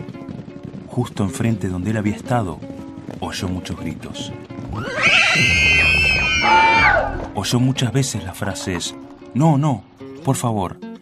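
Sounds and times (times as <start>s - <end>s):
people screaming: 4.7s - 7.3s.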